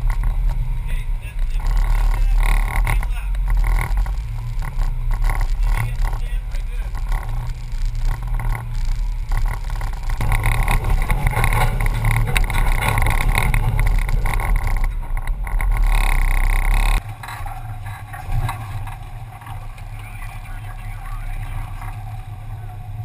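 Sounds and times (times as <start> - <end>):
rattling and bumping: 0.0 - 23.0
vehicle engine crawling over rock: 0.0 - 23.0.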